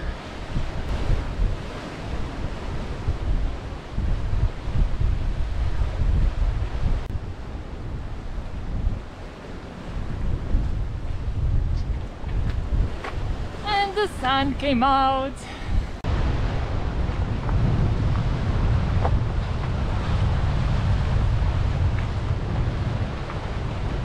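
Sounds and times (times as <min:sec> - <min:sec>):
waves breaking on rocky shore: 0:00.0 - 0:24.0
wind buffeting microphone: 0:00.0 - 0:24.0.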